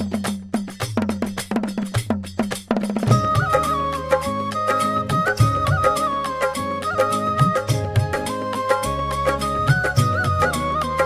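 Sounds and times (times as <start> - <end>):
quick sharp percussion strokes: 0.0 - 11.0.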